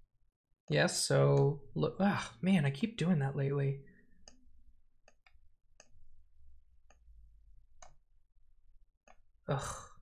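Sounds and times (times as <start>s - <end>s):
computer mouse clicks: 4.2s - 6.1s, 7.8s - 8.0s.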